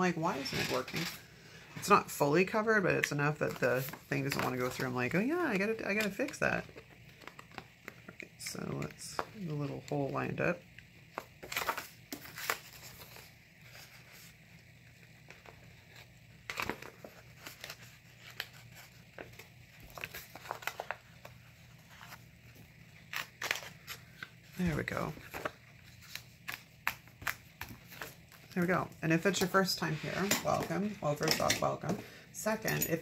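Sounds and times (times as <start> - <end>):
paper rustling and crinkling: 3.0 - 8.1, 11.1 - 31.2.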